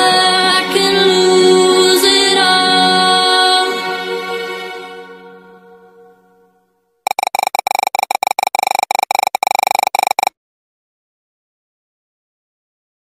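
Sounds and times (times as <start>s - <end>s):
stuttering synthesized tone: 7.1s - 10.3s.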